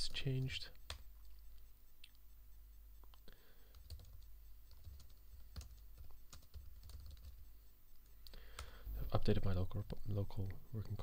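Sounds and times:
typing on computer keyboard: 3.6 - 7.5.

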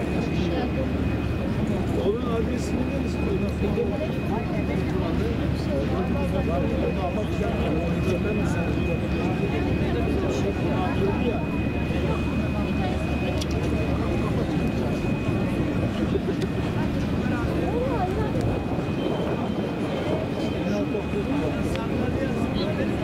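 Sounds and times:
many people talking: 0.0 - 23.0.

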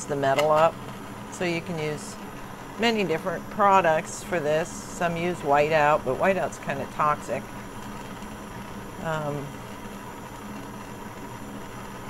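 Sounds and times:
torch flame hissing: 0.0 - 12.0.

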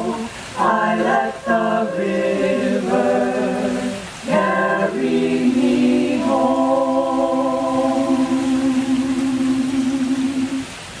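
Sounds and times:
choir holding low note: 0.0 - 10.7.

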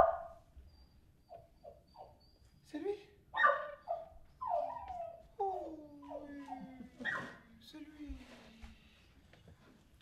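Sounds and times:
dog whimpering: 0.7 - 2.4, 3.6 - 7.4.

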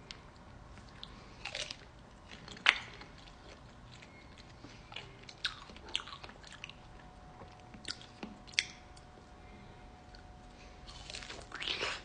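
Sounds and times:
biting and chewing fruit: 0.0 - 9.3, 10.0 - 12.0.

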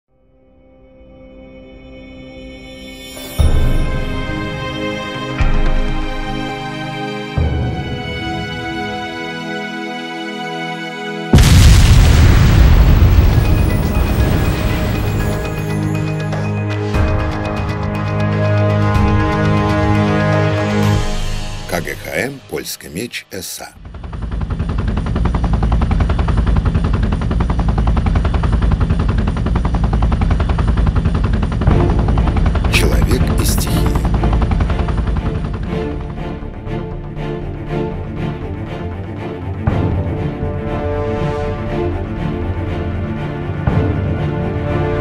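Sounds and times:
film score music: 0.1 - 45.0
deep cinematic boom: 11.4 - 15.8.

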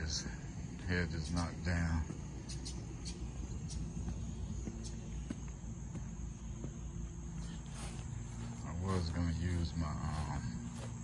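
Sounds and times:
high-pitched insect drone: 0.0 - 11.0
steady low rumble: 0.0 - 11.0.

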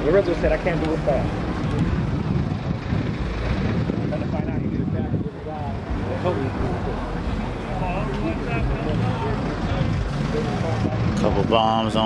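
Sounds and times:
people talking: 0.0 - 2.0, 3.8 - 12.0
low outdoor rumble: 0.0 - 12.0.

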